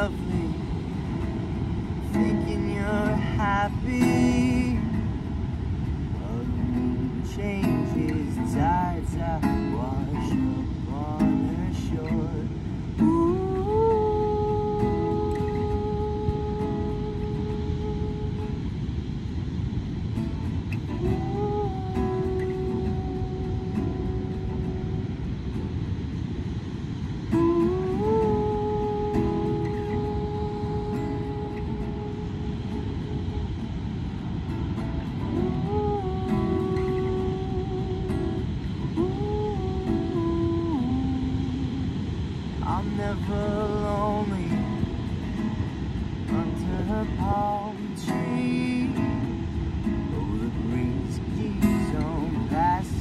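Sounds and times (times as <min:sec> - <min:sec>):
wordless humming vocals: 0:00.0 - 0:19.8, 0:20.8 - 0:25.6, 0:27.0 - 0:53.0
acoustic guitar playing: 0:00.0 - 0:53.0
surf and wind rushing: 0:00.0 - 0:53.0.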